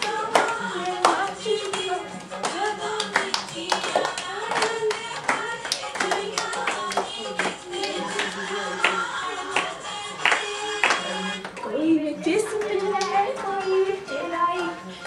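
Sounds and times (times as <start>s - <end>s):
women singing folk verses: 0.0s - 10.9s, 11.6s - 15.0s
group hand claps: 0.0s - 11.7s, 12.4s - 13.6s.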